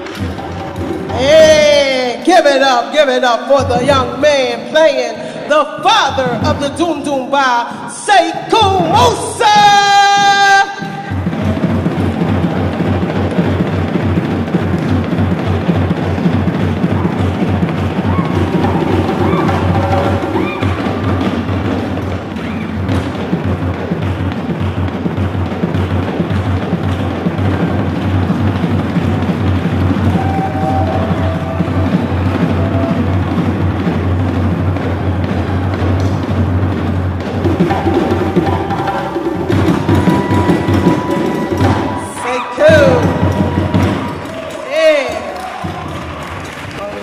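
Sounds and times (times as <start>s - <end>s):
djembe hand drums: 0.0s - 2.2s, 8.5s - 44.6s
bass drums: 0.0s - 2.6s, 3.5s - 4.5s, 5.8s - 7.2s, 8.5s - 46.8s.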